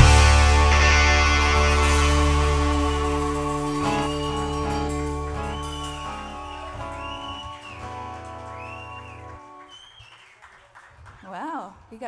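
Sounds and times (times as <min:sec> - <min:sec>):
band final chord ringing: 0:00.0 - 0:07.0
audience whistling: 0:00.0 - 0:10.9.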